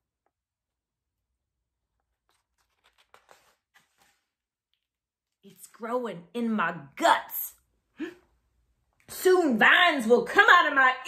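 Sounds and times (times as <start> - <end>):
book pages turning: 1.7 - 5.6.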